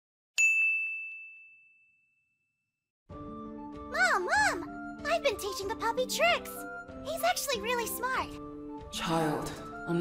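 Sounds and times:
bell-like ding: 0:00.4 - 0:02.6.

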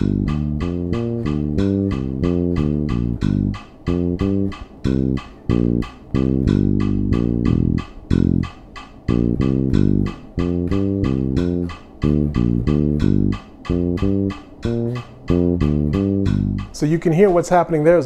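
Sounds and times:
electric bass playing: 0:00.0 - 0:16.8
metronome clicking: 0:00.0 - 0:17.6.

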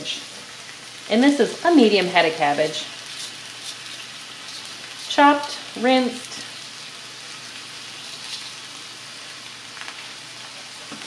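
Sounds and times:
vegetables sizzling in a skillet: 0:00.0 - 0:11.0.

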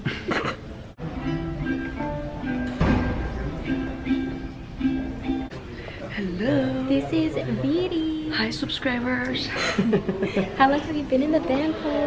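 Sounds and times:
vihuela strum: 0:01.0 - 0:05.6
plucked vihuela notes: 0:01.0 - 0:07.4.

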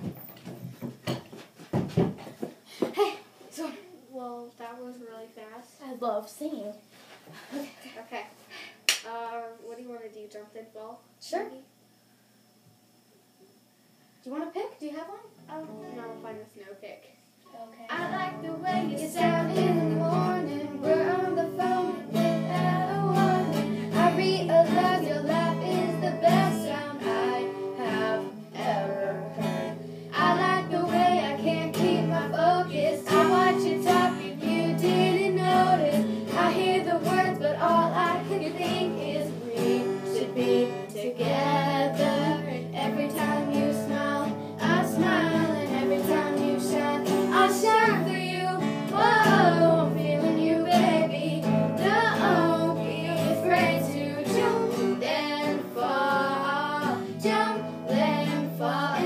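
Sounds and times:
acoustic guitar strumming: 0:17.9 - 0:59.0
girls singing together: 0:17.9 - 0:59.0.

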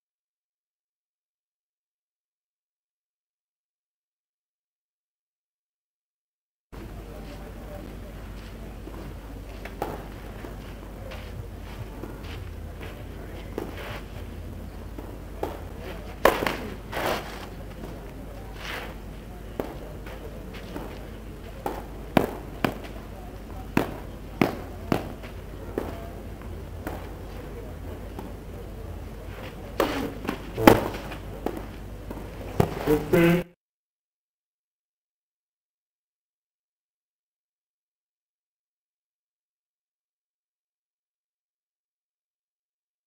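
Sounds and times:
rackets hitting tennis ball: 0:08.9 - 0:33.4
ball bouncing on clay court: 0:09.6 - 0:16.8, 0:19.5 - 0:29.0, 0:29.8 - 0:33.4.

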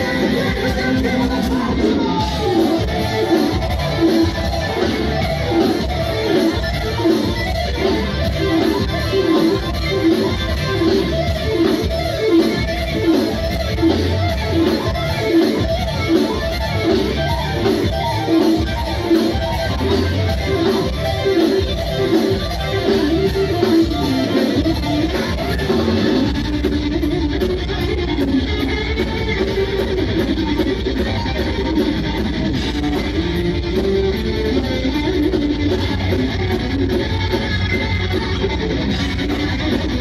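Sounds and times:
bass guitar: 0:00.0 - 0:40.0
distorted electric guitar: 0:00.0 - 0:40.0
drums: 0:00.0 - 0:40.0.

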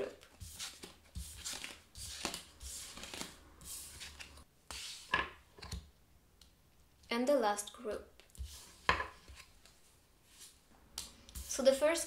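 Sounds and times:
cards rustling: 0:00.0 - 0:05.0.

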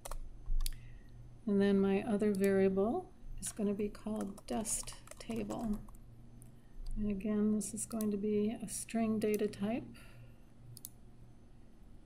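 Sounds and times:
computer mouse clicks: 0:00.0 - 0:00.8, 0:04.1 - 0:07.0, 0:10.8 - 0:11.0.

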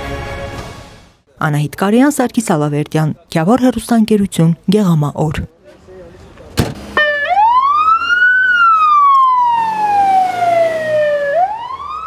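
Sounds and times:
thump: 0:06.6 - 0:07.0
ambulance siren wailing: 0:07.0 - 0:12.0.

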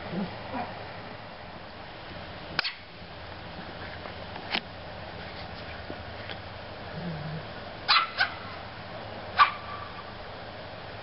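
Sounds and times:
puppy yipping: 0:07.9 - 0:08.4, 0:09.4 - 0:09.9.

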